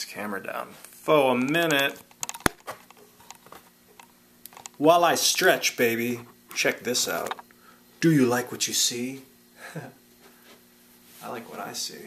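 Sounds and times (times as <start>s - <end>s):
faint steady hum: 0.0s - 12.0s
camera handling clicks and knocks: 2.1s - 4.8s.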